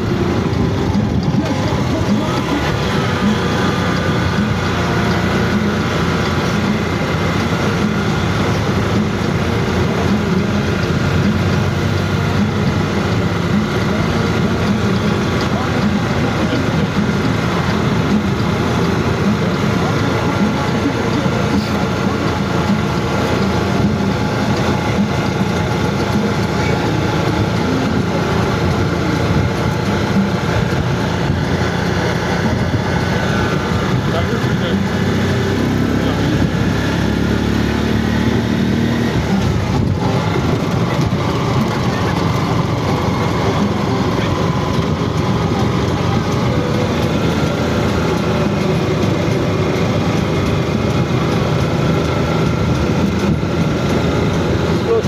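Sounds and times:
indistinct voices: 0:00.0 - 0:55.0
road noise: 0:00.0 - 0:55.0
vehicle engine running: 0:00.0 - 0:55.0.

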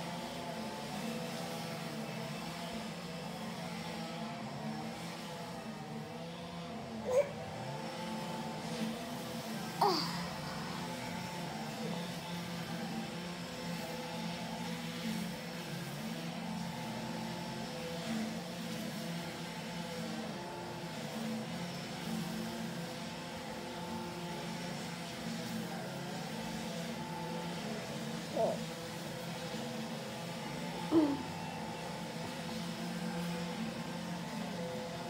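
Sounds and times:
muffled string trimmer engines: 0:00.0 - 0:35.0.

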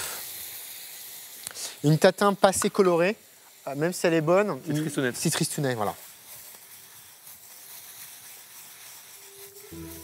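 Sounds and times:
apples sizzling in caramel: 0:00.0 - 0:10.0.

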